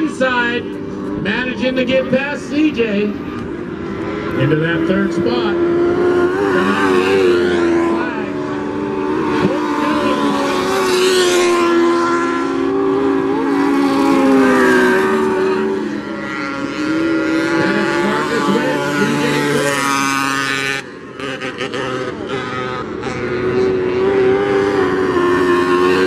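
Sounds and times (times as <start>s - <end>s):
racing car engines revving: 0.0s - 26.0s.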